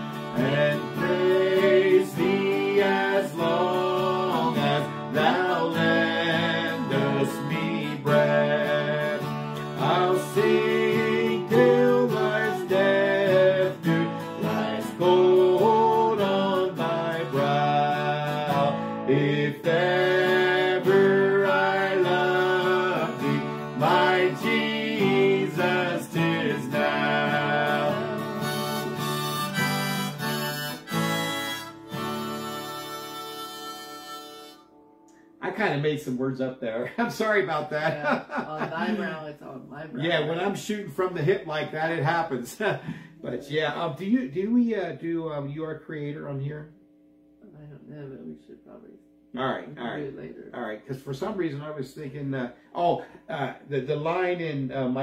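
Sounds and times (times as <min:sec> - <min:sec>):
harmonica playing melody: 0:00.0 - 0:35.2
acoustic guitar strumming chords: 0:00.0 - 0:36.2, 0:37.1 - 0:39.4.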